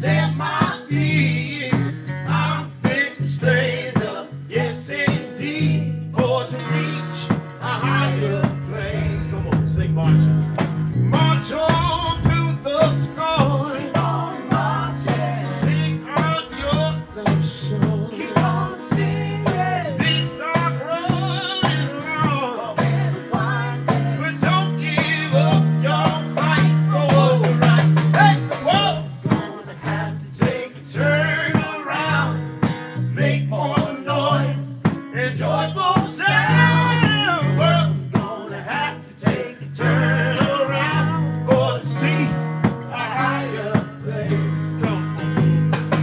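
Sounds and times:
man singing: 0.0s - 10.4s, 11.1s - 45.2s
acoustic guitar: 0.0s - 46.0s
electric bass: 0.0s - 46.0s
drum kit: 5.1s - 46.0s.

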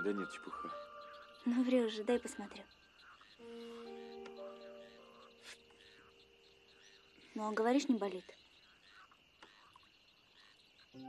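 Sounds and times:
faint frogs croaking: 0.0s - 11.0s.

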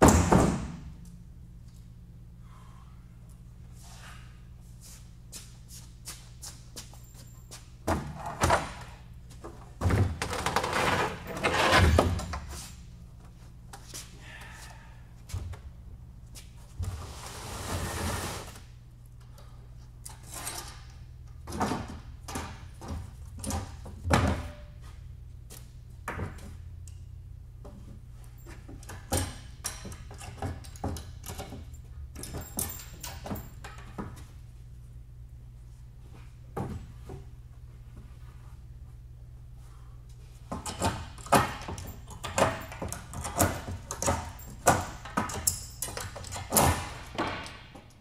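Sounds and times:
steady low hum: 0.0s - 48.0s.

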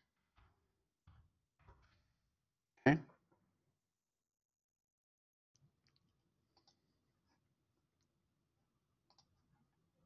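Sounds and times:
computer mouse clicks: 5.6s - 6.8s, 9.0s - 9.4s.

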